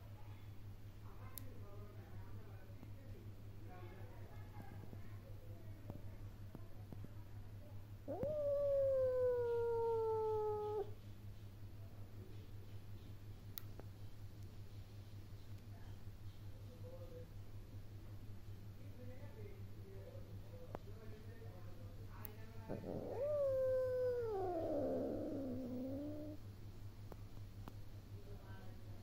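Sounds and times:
cat meowing: 8.1s - 10.9s, 22.7s - 26.4s.

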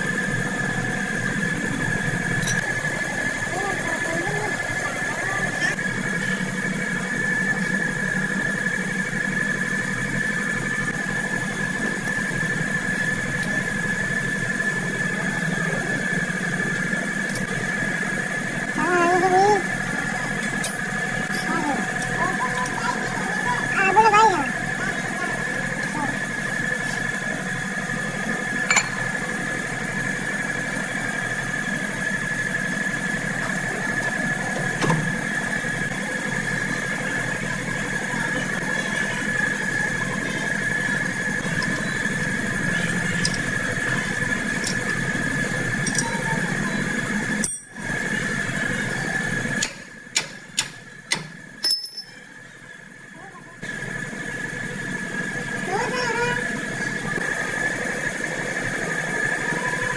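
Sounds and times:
machine hum with high whine: 0.0s - 59.9s.

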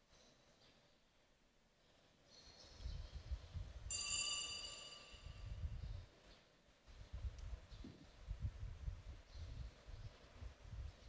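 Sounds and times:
ringing metallic clink: 3.9s - 5.6s.

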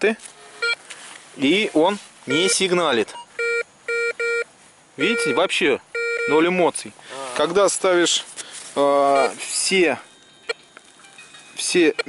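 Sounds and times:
metal detector beeps: 0.4s - 0.8s, 2.3s - 6.5s, 9.1s - 12.0s.

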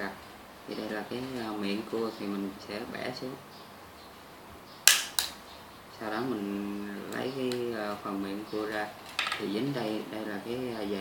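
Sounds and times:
crab shell cracking: 4.9s - 5.4s.

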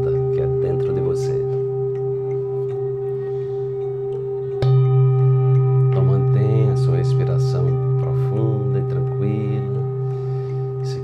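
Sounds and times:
singing bowl ringing: 0.0s - 11.0s
singing bowl struck: 0.0s - 11.0s.

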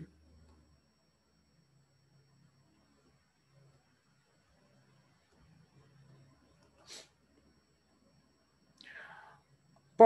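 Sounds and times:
short inhale: 6.8s - 7.1s, 8.8s - 9.4s.

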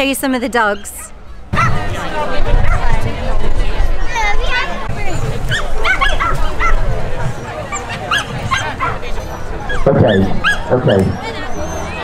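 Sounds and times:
crowd chatter: 0.0s - 12.0s
dogs yipping: 0.6s - 1.8s, 5.4s - 12.0s.

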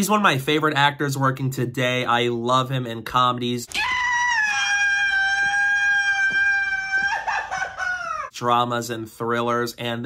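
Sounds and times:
man screaming high-pitched: 3.7s - 8.3s.

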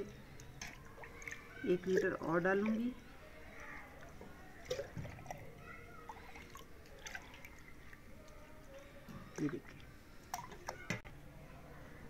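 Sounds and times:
milk dripping and trickling: 0.0s - 11.0s.

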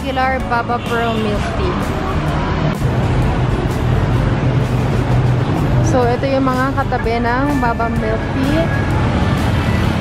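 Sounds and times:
road noise: 0.0s - 10.0s
vehicle engine hum: 0.0s - 10.0s.

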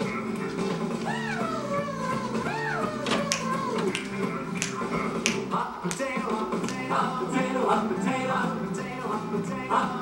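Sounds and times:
children's song from television: 0.0s - 10.0s.

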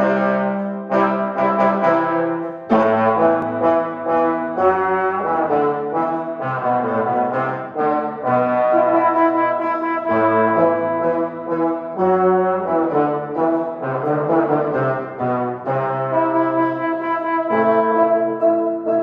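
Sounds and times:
brass trio playing classical music: 0.0s - 19.0s.

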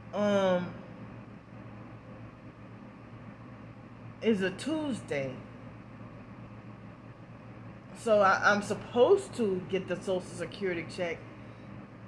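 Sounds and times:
low background hum with hiss: 0.0s - 12.0s
person speaking: 4.2s - 5.5s, 7.9s - 11.3s.

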